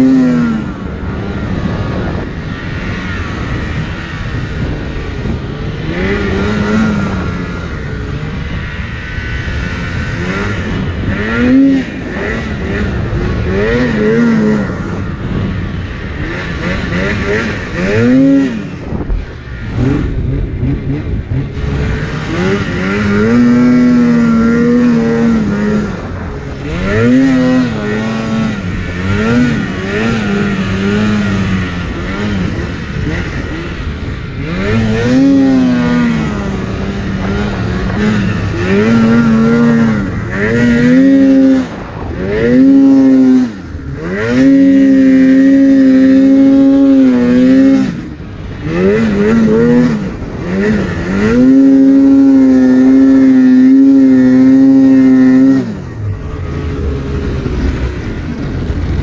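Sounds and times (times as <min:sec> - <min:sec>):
snowmobile engine revving: 0:00.0 - 0:59.0.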